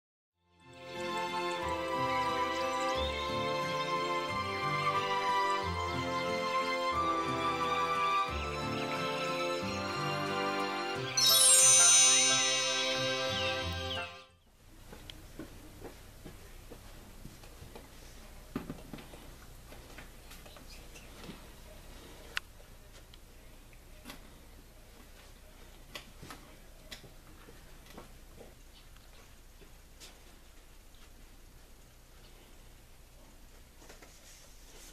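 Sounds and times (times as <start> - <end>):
bell-like chime ringing: 8.5 - 14.3
sparkling shimmer: 9.2 - 14.3
intro jingle: 9.7 - 14.3.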